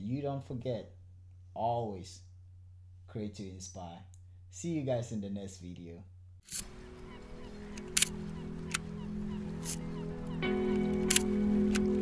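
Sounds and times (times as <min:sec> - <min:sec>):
low droning chord: 0:06.7 - 0:12.0
sharp clicks: 0:07.7 - 0:08.9, 0:09.6 - 0:12.0.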